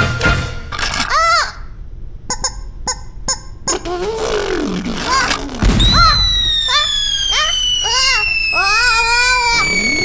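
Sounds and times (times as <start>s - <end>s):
cartoon character squeaky cries: 1.0s - 1.7s, 5.0s - 10.0s
cartoon falling whistle: 5.1s - 10.0s.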